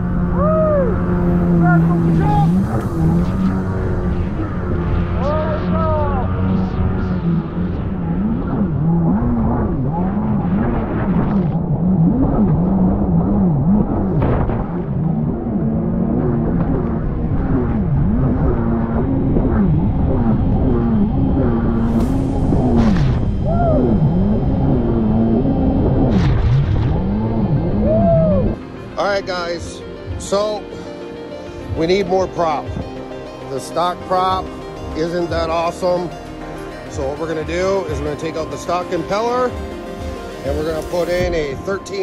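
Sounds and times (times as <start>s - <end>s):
jet ski engine revving: 0.0s - 28.6s.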